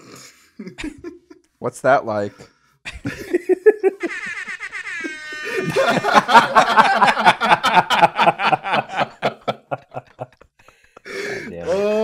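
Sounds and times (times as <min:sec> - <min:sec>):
men laughing: 0:00.6 - 0:01.4, 0:02.9 - 0:12.0.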